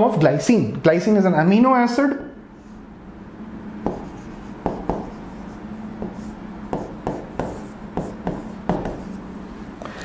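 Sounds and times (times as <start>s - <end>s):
steady low hum: 0.0s - 10.0s
marker writing on whiteboard: 3.8s - 9.2s.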